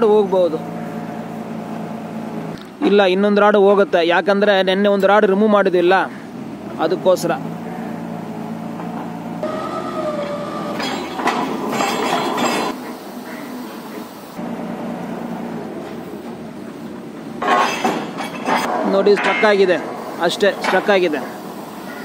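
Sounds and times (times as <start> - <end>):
drilling rig engine running: 0.0 - 2.6, 6.2 - 17.4
metal clinks and clanks: 10.8 - 12.8, 17.4 - 19.8.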